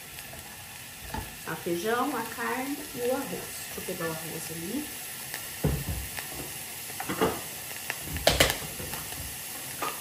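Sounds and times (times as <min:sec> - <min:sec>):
onion sizzling in oil: 0:00.0 - 0:10.0.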